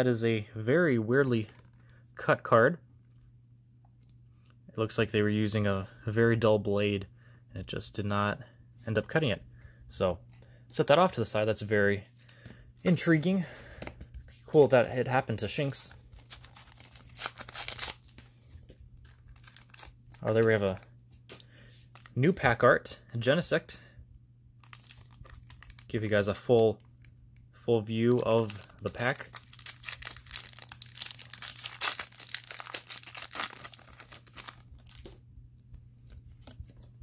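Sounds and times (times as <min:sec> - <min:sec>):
plastic wrapper tearing: 0:15.8 - 0:18.3, 0:19.0 - 0:20.9, 0:24.6 - 0:27.1, 0:28.1 - 0:35.2.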